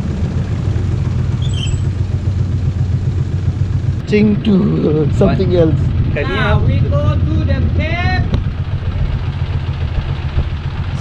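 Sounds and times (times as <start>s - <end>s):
boat engine running: 0.0s - 11.0s.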